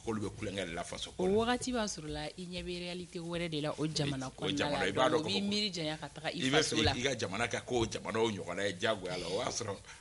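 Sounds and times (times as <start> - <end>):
person talking: 3.8 - 5.7, 6.4 - 7.1.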